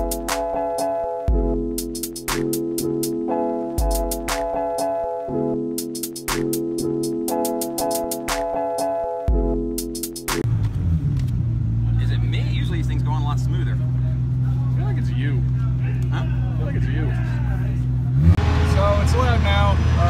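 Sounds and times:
background music: 0.0s - 10.5s
engine drone: 10.5s - 20.0s.

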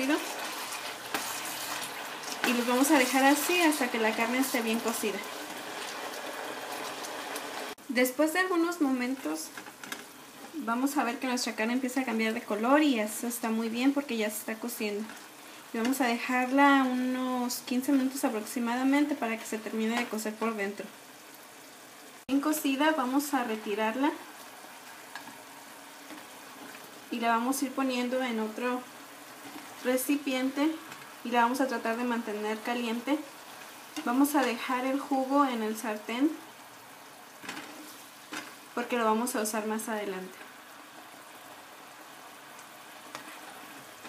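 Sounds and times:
spoon stirring in a pan: 0.0s - 7.4s, 24.3s - 27.0s, 42.6s - 44.0s
chicken sizzling in oil: 0.0s - 44.0s.

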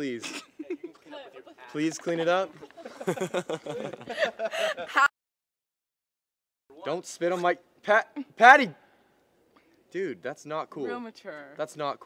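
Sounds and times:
person chuckling and laughing: 0.2s - 1.1s, 2.1s - 5.1s.

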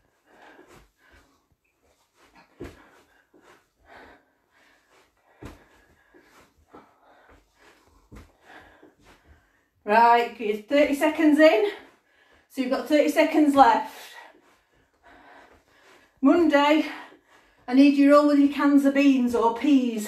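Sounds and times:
feet thudding on floor: 0.0s - 9.5s
person breathing hard: 0.0s - 9.8s, 11.8s - 12.5s, 14.1s - 16.2s.

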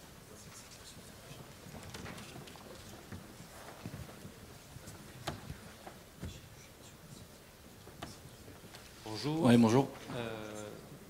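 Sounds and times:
people rustling: 0.0s - 11.0s.

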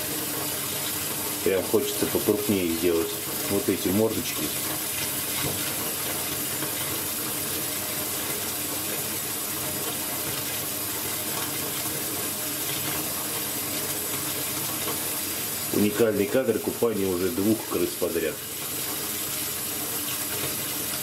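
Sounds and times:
tap water running into bathtub: 0.0s - 21.0s.

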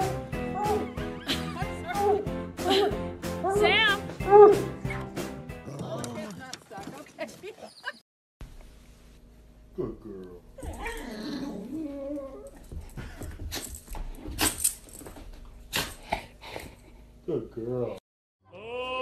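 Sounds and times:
dog whining and whimpering: 10.6s - 12.7s.

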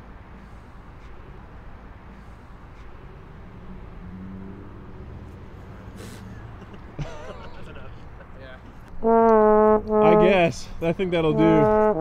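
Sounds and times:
trombone held notes: 9.0s - 10.6s, 11.3s - 12.0s.

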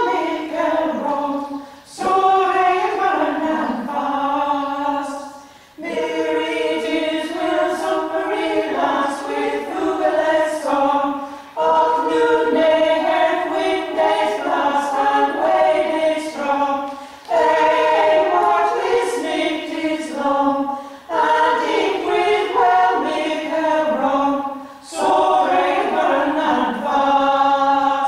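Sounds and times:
women's choir singing in harmony: 0.0s - 28.0s.

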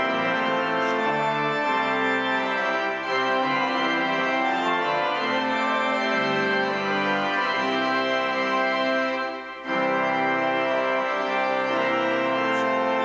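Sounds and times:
church organ chords: 0.0s - 13.0s.

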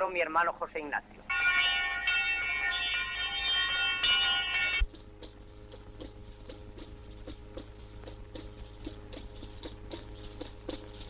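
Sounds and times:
bells ringing: 1.3s - 4.8s.

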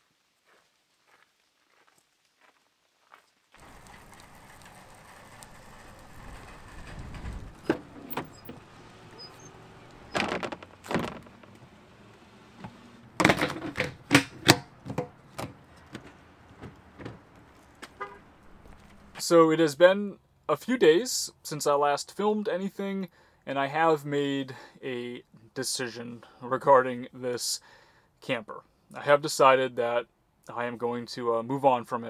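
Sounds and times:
outdoor background noise: 0.0s - 32.0s
footsteps on gravel and leaves: 0.4s - 6.7s, 17.2s - 19.2s
truck door thunks and knocks: 10.0s - 11.6s, 12.6s - 17.4s.

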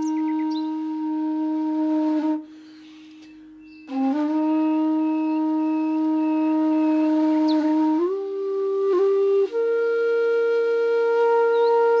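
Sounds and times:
flute playing long notes: 0.0s - 12.0s.

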